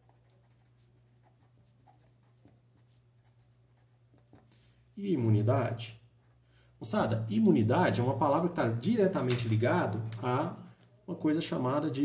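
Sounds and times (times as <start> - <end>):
marker pen scratching on paper: 0.0 - 4.8.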